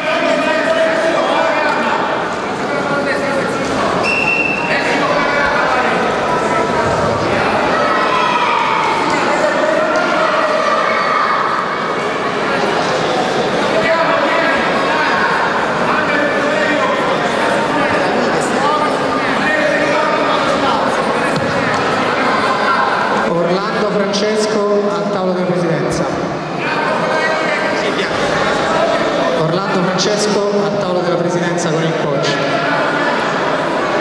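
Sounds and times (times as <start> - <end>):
man speaking over public address: 0.0 - 6.4, 13.6 - 33.3
murmur of crowd chatter: 0.0 - 34.0
spectators and coaches shouting: 3.9 - 23.4.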